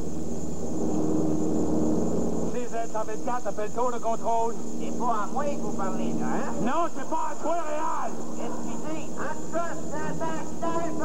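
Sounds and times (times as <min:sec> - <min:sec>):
airplane engine drone in cabin: 0:00.0 - 0:06.9
voice over radio: 0:02.6 - 0:11.0.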